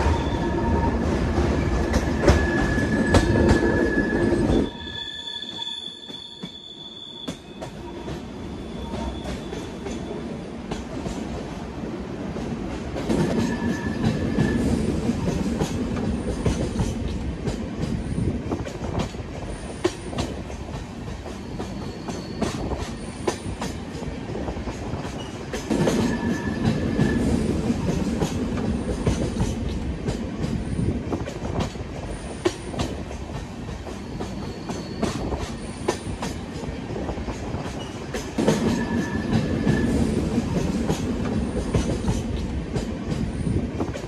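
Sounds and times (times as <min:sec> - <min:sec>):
train rumbling on track: 0:00.0 - 0:44.0
rail-joint clicks: 0:01.4 - 0:04.8, 0:07.2 - 0:11.4, 0:12.7 - 0:44.0
high wheel squeal: 0:02.2 - 0:10.2, 0:34.4 - 0:35.9.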